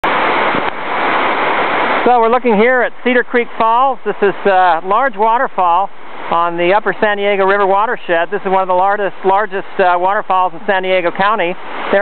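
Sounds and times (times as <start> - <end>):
large waterfall rushing: 0.0 - 12.0.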